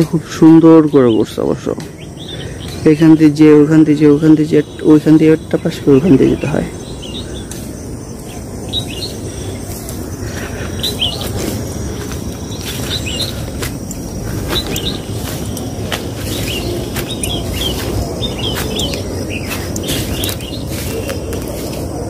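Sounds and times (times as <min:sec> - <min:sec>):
low background rush: 0:00.0 - 0:22.0
small birds chirping: 0:00.0 - 0:22.0.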